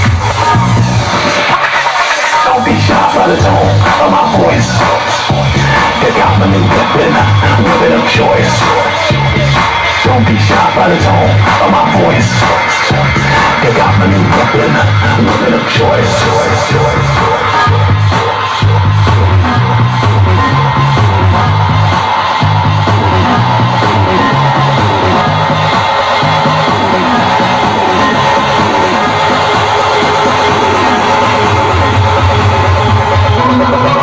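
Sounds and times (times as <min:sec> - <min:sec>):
electronic dance music: 0:00.0 - 0:34.0
pulsing bass line: 0:00.0 - 0:34.0.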